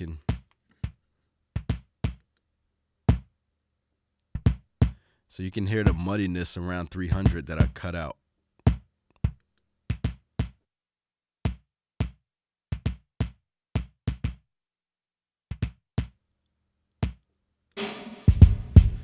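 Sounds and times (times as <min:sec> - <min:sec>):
drum beat with snare: 0:17.8 - 0:19.0
kick drum hits: 0:17.8 - 0:19.0.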